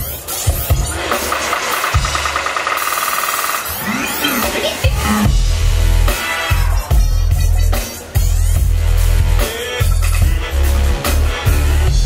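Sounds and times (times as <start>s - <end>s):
electronic funk music: 0.0s - 12.0s
heavy bass: 3.7s - 12.0s.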